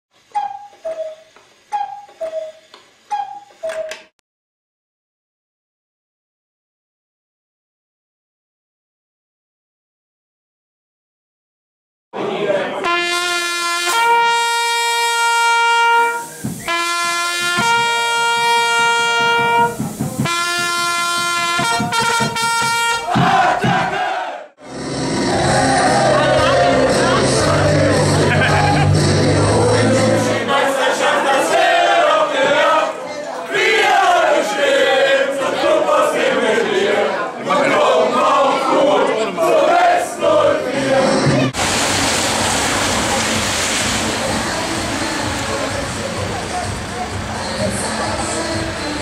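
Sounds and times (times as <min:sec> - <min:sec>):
cuckoo clock calling: 0:00.3 - 0:04.1
crowd chatter: 0:12.2 - 0:13.0, 0:24.6 - 0:41.6, 0:42.6 - 0:49.0
crowd noise: 0:12.2 - 0:13.1, 0:23.0 - 0:49.0
solo trumpet playing: 0:12.8 - 0:23.2.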